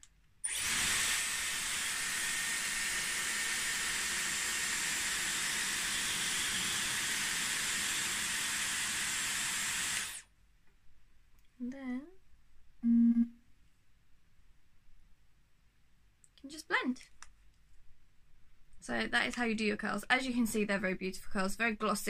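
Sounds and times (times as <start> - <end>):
hair styler blowing air: 0.4 - 10.2.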